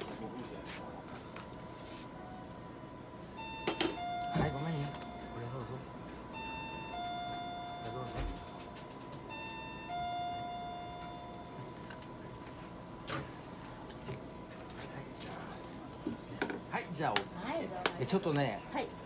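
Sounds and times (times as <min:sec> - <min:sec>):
faint steady tone: 0:03.3 - 0:08.6, 0:09.3 - 0:12.3
electronic two-tone chime: 0:03.4 - 0:05.6, 0:06.3 - 0:08.5, 0:09.3 - 0:11.5.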